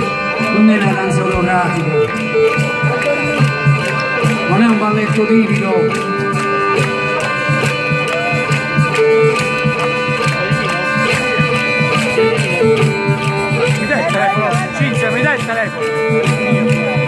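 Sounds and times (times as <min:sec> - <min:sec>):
folk band playing: 0:00.0 - 0:17.0.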